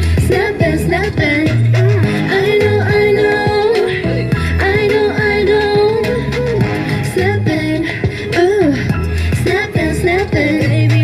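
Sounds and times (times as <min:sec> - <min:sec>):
pop song with vocals: 0:00.0 - 0:11.0.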